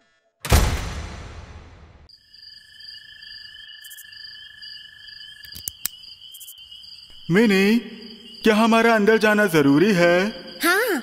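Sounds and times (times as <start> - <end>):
crickets chirping: 2.1 - 11.0.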